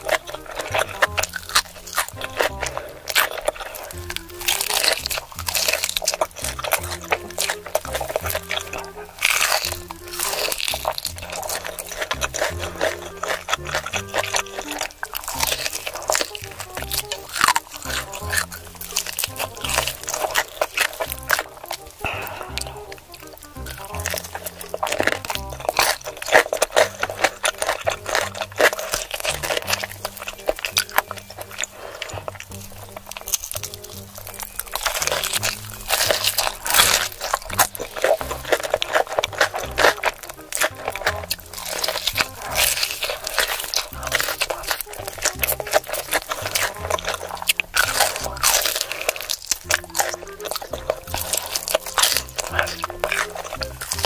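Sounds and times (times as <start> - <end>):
background music with bass: 0.0 - 54.0
crunching and chewing fried chicken: 0.0 - 54.0.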